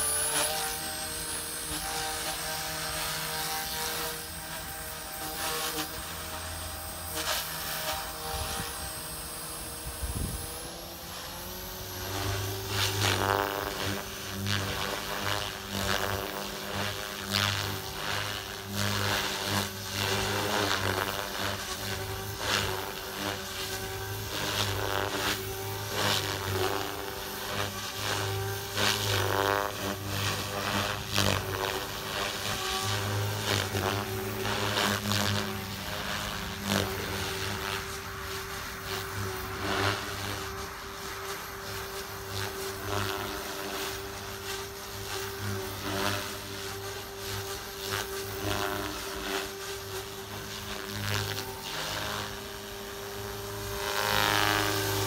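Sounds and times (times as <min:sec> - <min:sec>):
helicopter motor and rotor whine: 0:00.0 - 0:55.0.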